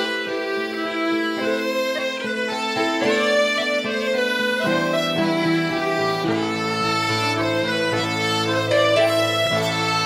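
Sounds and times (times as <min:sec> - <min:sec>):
slow instrumental melody: 0:00.0 - 0:10.0
steady accompaniment: 0:00.0 - 0:10.0.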